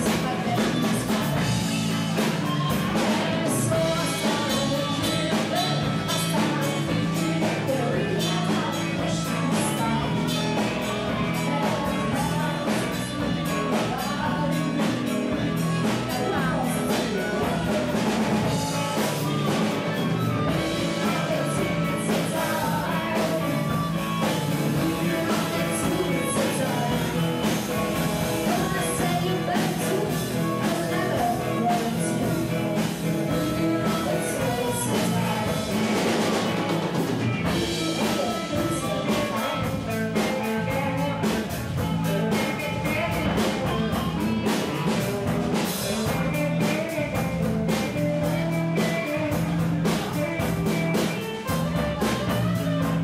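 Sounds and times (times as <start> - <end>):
live rock band playing: 0.0 - 53.0.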